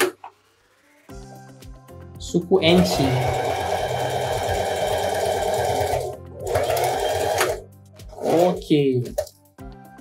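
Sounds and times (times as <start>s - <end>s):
electric sewing machine stitching: 2.6s - 7.6s, 8.2s - 8.6s.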